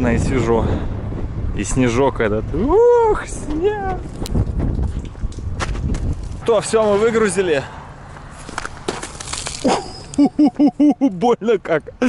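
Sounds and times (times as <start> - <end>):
wind rumble on microphone: 0.0 - 7.3.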